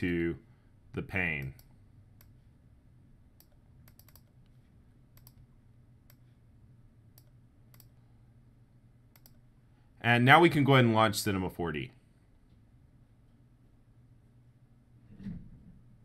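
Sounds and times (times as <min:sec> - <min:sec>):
computer mouse clicks: 0:03.4 - 0:04.6, 0:05.2 - 0:05.4, 0:07.2 - 0:08.0, 0:09.1 - 0:09.4.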